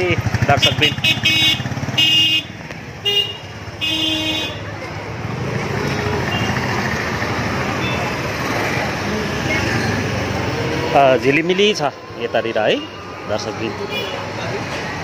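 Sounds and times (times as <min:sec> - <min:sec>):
motorcycle and scooter traffic hum: 0:00.0 - 0:15.0
vehicle horns tooting: 0:00.5 - 0:04.7, 0:06.2 - 0:06.8, 0:07.7 - 0:08.2, 0:13.8 - 0:14.4.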